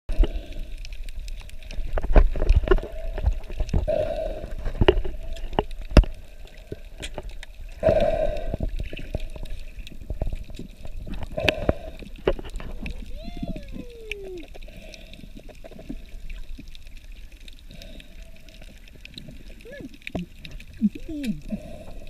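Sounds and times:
water gurgling and sloshing: 0:00.1 - 0:22.0.

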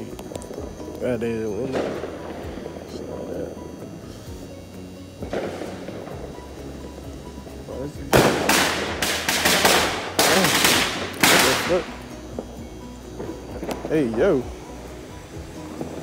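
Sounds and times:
fireworks bangs and cracks: 0:01.7 - 0:02.5, 0:05.2 - 0:06.3, 0:08.0 - 0:14.1, 0:15.6 - 0:16.0.

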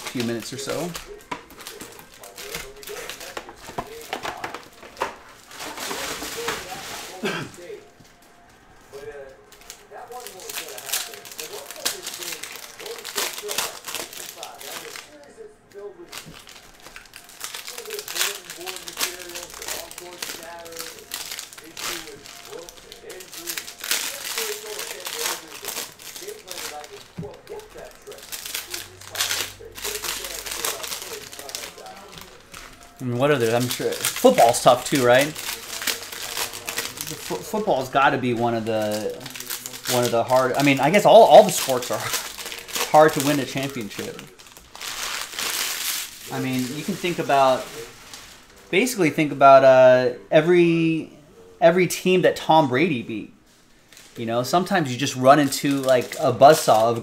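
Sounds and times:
foil wrappers crinkling and tearing: 0:00.0 - 0:50.2, 0:52.8 - 0:57.0.

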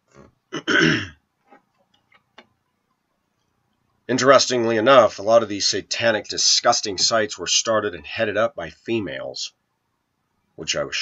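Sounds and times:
man clearing throat: 0:00.2 - 0:01.2.

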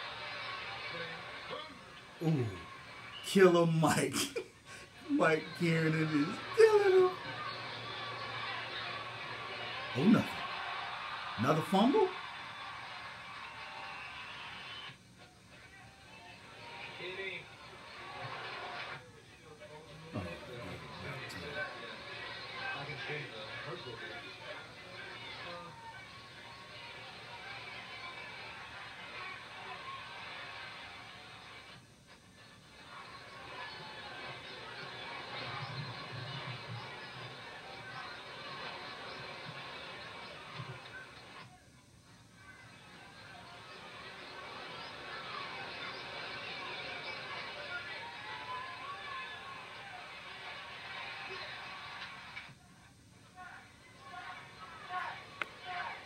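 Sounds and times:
muffled television voices: 0:00.0 - 0:56.0
television music: 0:00.0 - 0:56.0.

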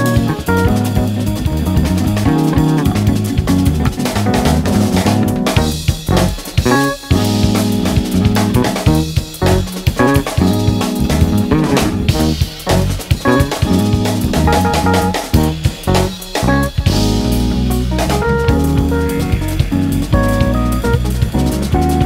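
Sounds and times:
instrumental jazz: 0:00.0 - 0:22.0.

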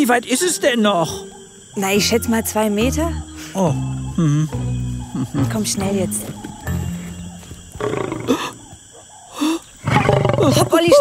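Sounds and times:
lion roaring: 0:09.8 - 0:10.7.

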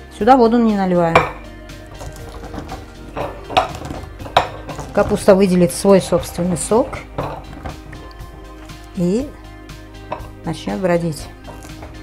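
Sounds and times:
knocks and clinks against glass: 0:02.0 - 0:05.3, 0:06.9 - 0:08.0.

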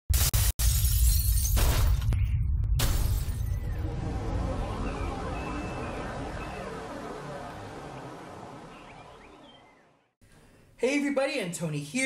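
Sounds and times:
deep bass rumble: 0:02.0 - 0:09.9
loud noisy crashes: 0:02.8 - 0:08.7.

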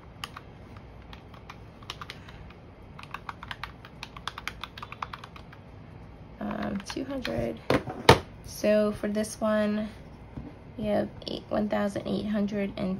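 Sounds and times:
calculator keys clicking: 0:00.2 - 0:05.6.

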